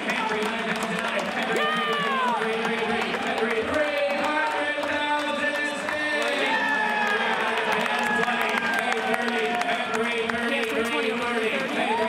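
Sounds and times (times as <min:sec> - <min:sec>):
auctioneer chanting: 0:00.0 - 0:12.0
crowd murmur: 0:00.0 - 0:12.0.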